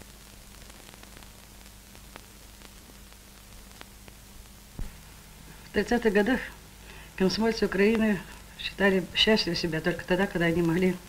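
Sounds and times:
faint hiss: 0:00.0 - 0:11.0
low mains hum: 0:00.0 - 0:11.0.

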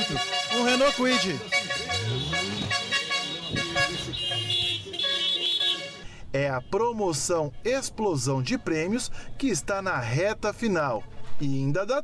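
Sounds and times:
car horns honking: 0:00.0 - 0:07.8.

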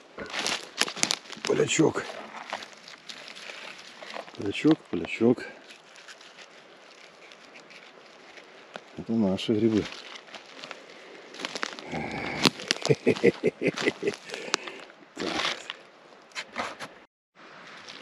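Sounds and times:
dry pine needles and leaves crackling: 0:00.0 - 0:16.3, 0:17.4 - 0:18.0
wicker basket handled: 0:00.2 - 0:14.6.

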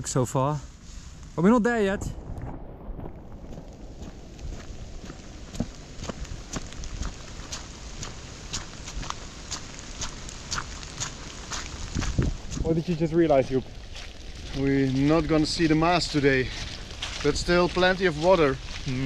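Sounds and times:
low rumble: 0:00.5 - 0:19.0
footsteps on wet path: 0:02.9 - 0:19.0.

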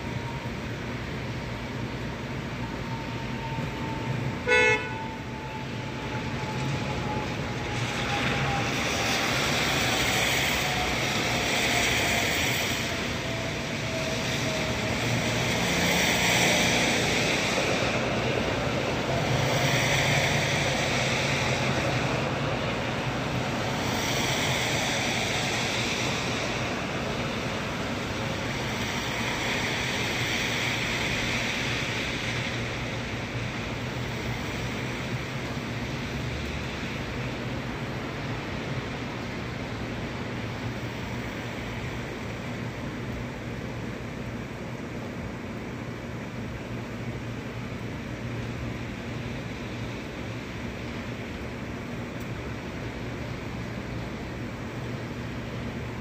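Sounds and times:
steady rain: 0:00.0 - 0:56.0
vehicle horn toot: 0:04.4 - 0:05.2.

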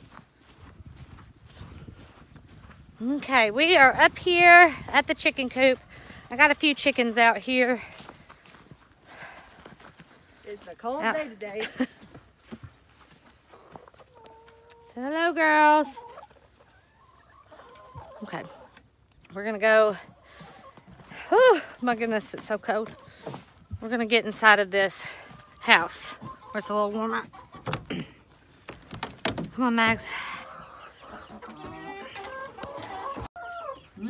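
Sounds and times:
hens clucking: 0:00.6 - 0:34.0.

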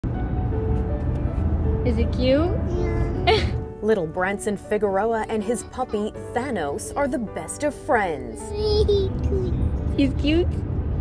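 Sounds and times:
road noise inside car: 0:00.0 - 0:03.5, 0:08.6 - 0:11.0
car engine rumble: 0:00.0 - 0:11.0.

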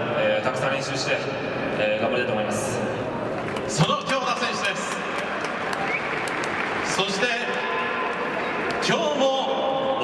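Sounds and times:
stadium crowd applauding: 0:03.4 - 0:09.5.

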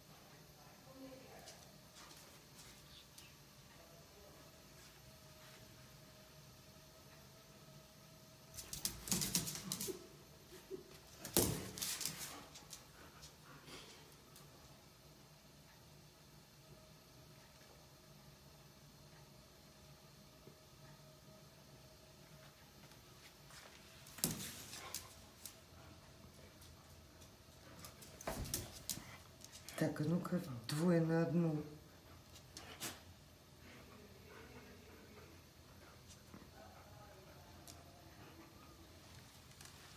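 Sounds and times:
animals scuffling on tiled floor: 0:01.2 - 0:03.4, 0:08.4 - 0:14.6, 0:22.3 - 0:31.4.

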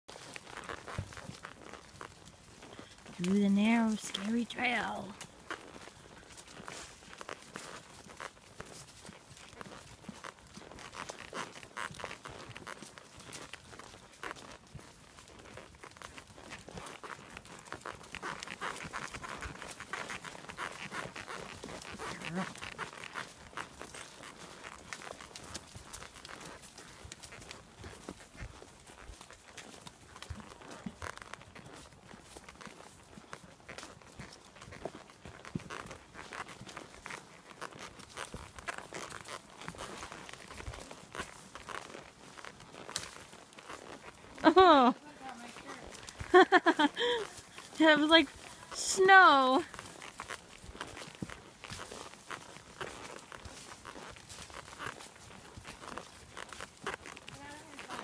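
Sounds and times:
hooves crunching dry leaves: 0:00.1 - 0:58.0.

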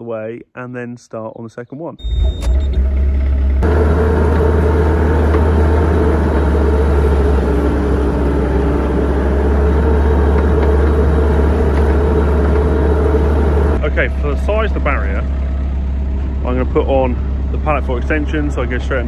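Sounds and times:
diesel engine running: 0:02.0 - 0:19.0.

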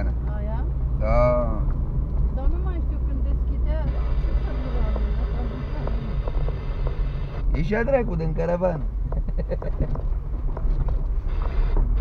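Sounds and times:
car rumbling on dirt road: 0:00.0 - 0:12.0.

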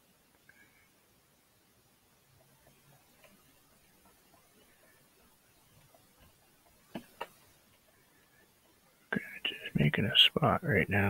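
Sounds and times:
light taps: 0:02.4 - 0:08.0
man mumbling: 0:09.2 - 0:11.0.

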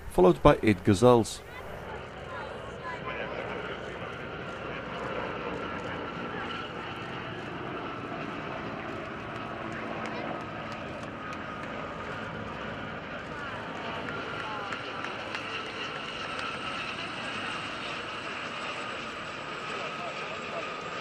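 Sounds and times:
helicopters passing overhead: 0:00.0 - 0:21.0.

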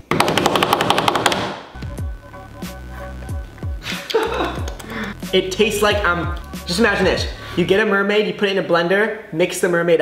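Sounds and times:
deep falling bass hits: 0:01.8 - 0:07.8
background music: 0:01.8 - 0:08.4.

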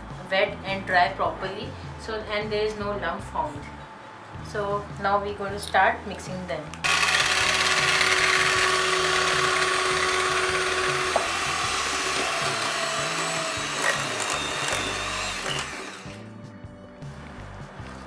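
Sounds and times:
electric hand mixer whine: 0:06.8 - 0:16.2.

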